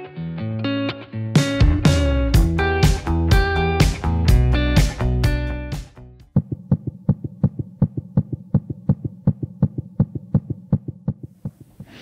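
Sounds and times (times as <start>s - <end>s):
heartbeat double thump: 6.3s - 11.9s.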